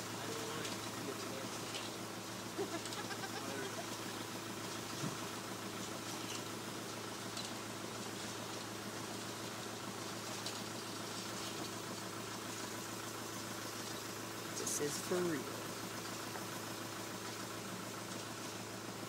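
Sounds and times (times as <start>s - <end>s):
van engine idling: 0.0s - 19.0s.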